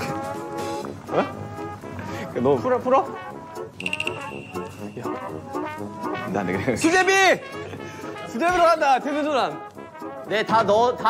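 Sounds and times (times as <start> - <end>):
comic brass music: 0.0 - 11.0
high ringing chime: 3.8 - 5.3.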